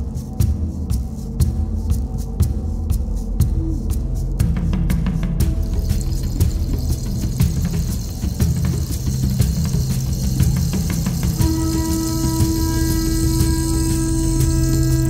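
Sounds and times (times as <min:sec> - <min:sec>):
background music: 0:00.0 - 0:15.0
long held note: 0:11.4 - 0:15.0.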